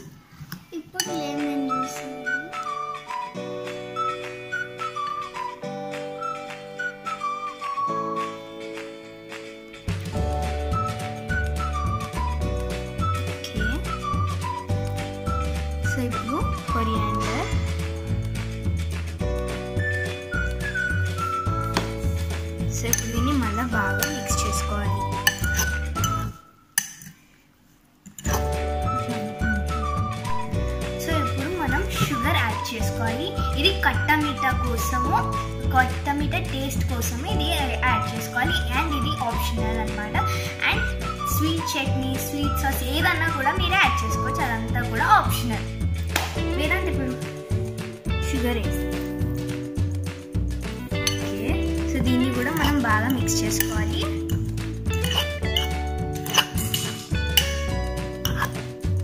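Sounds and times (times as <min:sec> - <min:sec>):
background music: 0:00.0 - 0:27.0, 0:28.2 - 0:59.0
metal fork clinking against glass bowl: 0:22.9 - 0:27.2, 0:28.1 - 0:28.5, 0:50.9 - 0:51.5, 0:52.4 - 0:58.6.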